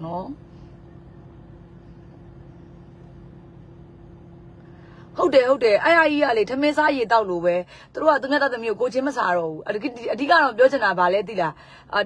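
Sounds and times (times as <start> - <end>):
car idling inside cabin: 0.0 - 12.0.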